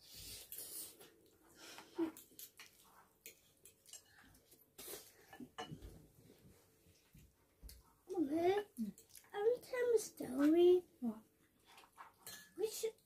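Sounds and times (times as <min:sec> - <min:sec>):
cutlery clinking on ceramic bowl: 0:05.3 - 0:05.9, 0:12.2 - 0:12.6.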